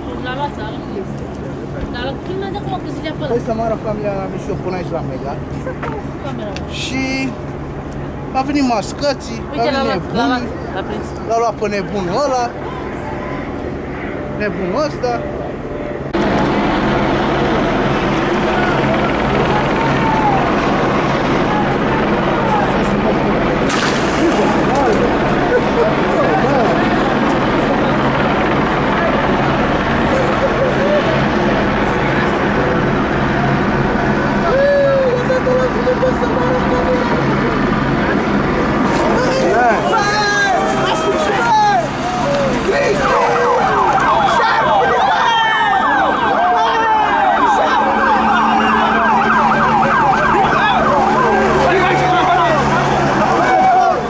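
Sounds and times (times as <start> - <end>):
helicopter hovering: 0.0 - 54.0
vehicle noise: 0.0 - 54.0
voices calling out: 4.2 - 54.0
sirens wailing: 9.6 - 54.0
siren yelping: 39.5 - 54.0.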